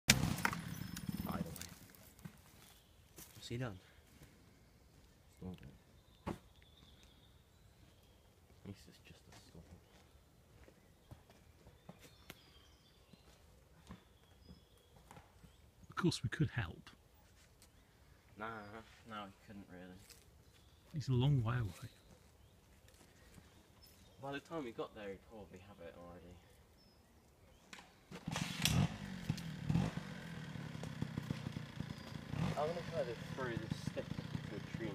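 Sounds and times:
small engine revving: 0.1s - 1.8s, 28.1s - 34.9s
faint woodland ambience: 0.2s - 34.9s.

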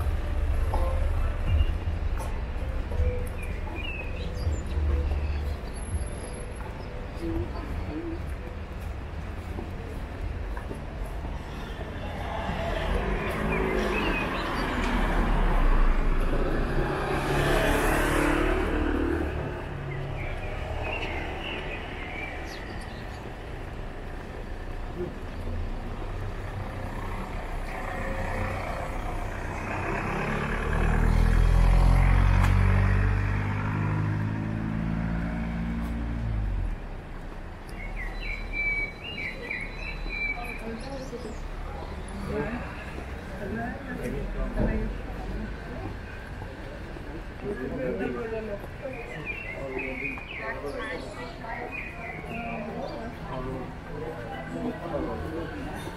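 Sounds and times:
cars passing: 0.0s - 55.9s.

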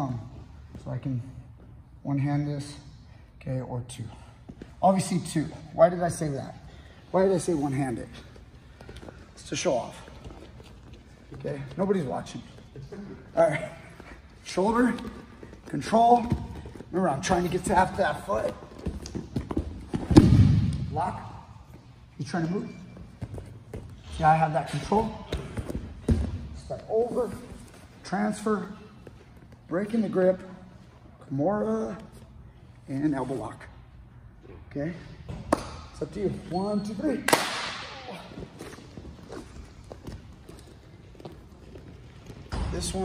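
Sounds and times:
man speaking: 0.0s - 8.3s, 11.3s - 18.8s.

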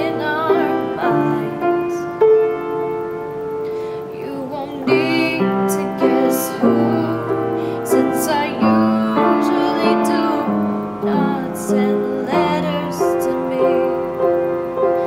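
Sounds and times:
woman singing: 0.0s - 2.1s, 4.0s - 15.0s
upright piano playing chords: 0.0s - 15.0s.

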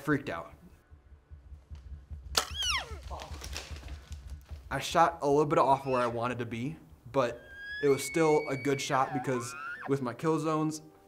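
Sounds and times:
bow shot crack: 2.2s - 4.1s
arrow striking animal: 2.3s - 2.9s
elk cry: 7.2s - 10.0s.

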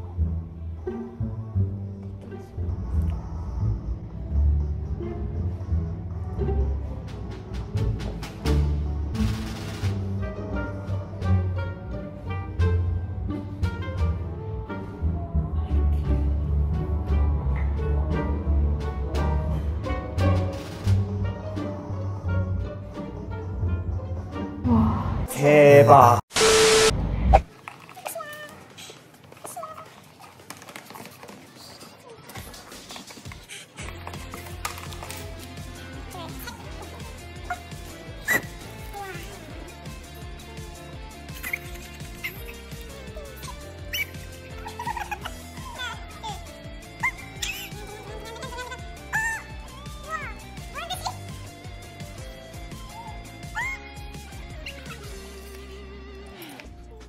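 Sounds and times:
loud noisy sound: 26.3s - 27.4s.

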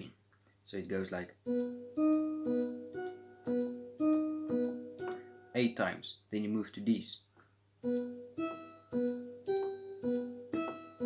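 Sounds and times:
organ single notes: 1.4s - 5.8s, 7.8s - 11.0s.

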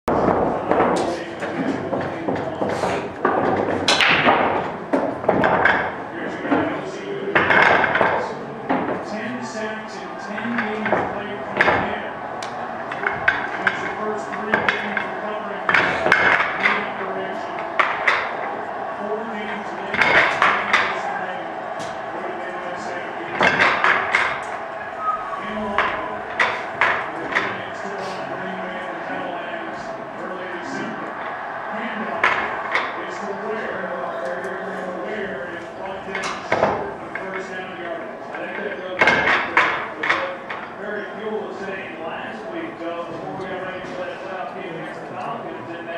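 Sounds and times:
background chatter: 0.1s - 45.9s
pool balls clacking: 0.1s - 45.9s.

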